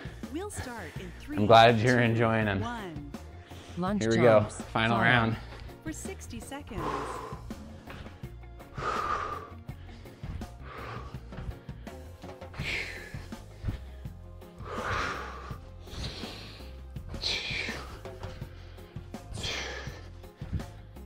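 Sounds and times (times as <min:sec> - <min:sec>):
man breathing hard: 0:00.0 - 0:01.3, 0:06.8 - 0:21.0
background music with bass line: 0:00.0 - 0:21.0.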